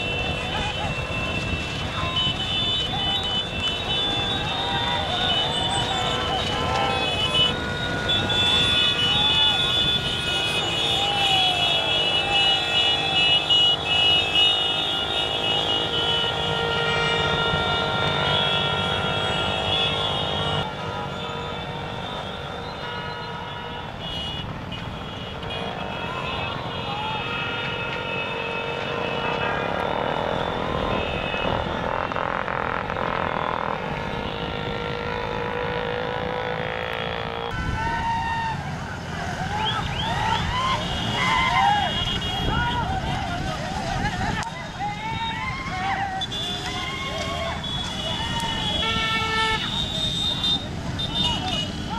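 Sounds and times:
motorcycles running: 0.0s - 51.9s
voices: 0.0s - 51.9s.

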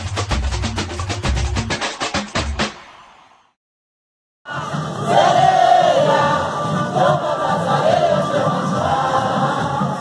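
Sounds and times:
large crowd singing: 4.5s - 10.0s.

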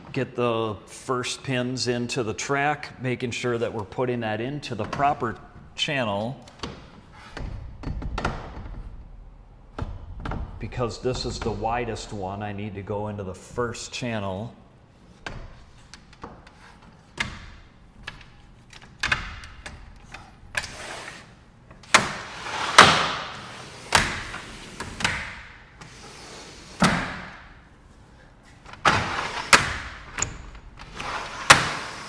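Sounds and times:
window panels clicking and knocking: 6.5s - 10.6s, 15.2s - 20.8s.

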